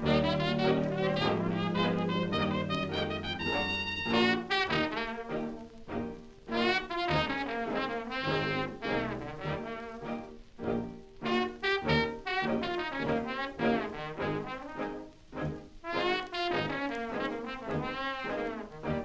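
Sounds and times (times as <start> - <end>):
jazz band record with brass: 0.0 - 19.0.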